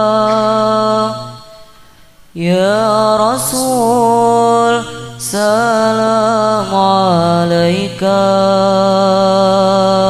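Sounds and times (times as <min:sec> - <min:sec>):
person singing ornamented melody: 0:00.0 - 0:10.0.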